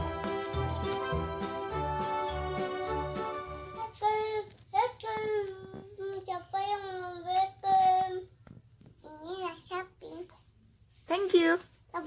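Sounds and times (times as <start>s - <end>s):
toddler singing: 3.7s - 8.4s.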